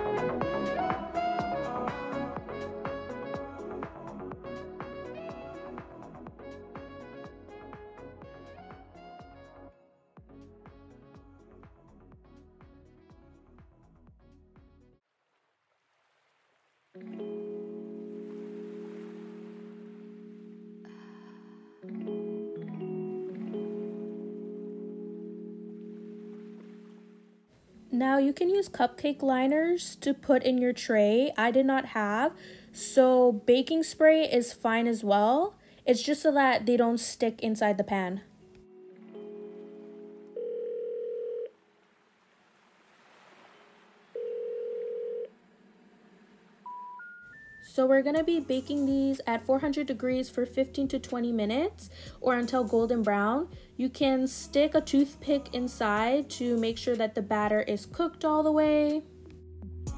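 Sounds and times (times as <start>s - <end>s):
instrumental background music: 0.0s - 15.0s, 17.0s - 41.2s, 46.6s - 59.9s
telephone ringing tone: 38.9s - 41.6s, 44.2s - 45.3s.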